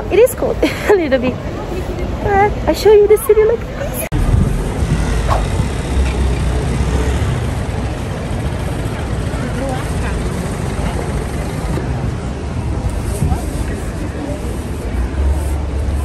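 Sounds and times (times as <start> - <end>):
faint voices of passers-by: 0.0 - 16.0
road traffic: 0.0 - 16.0
low rumble: 4.1 - 6.9.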